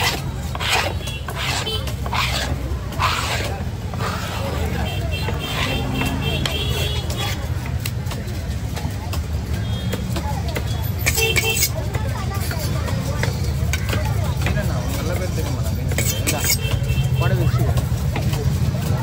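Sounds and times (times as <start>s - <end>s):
faint chatter of voices: 0.0s - 19.0s.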